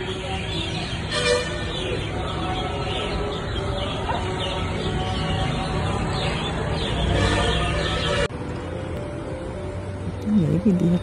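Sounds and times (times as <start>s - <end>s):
outdoor traffic: 0.0s - 11.0s.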